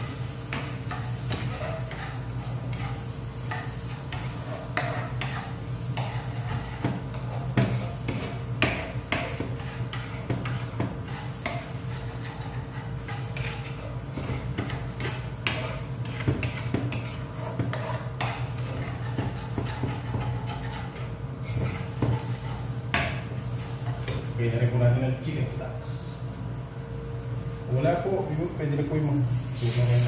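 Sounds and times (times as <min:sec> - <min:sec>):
spoon stirring thick gravy: 0:00.0 - 0:22.8.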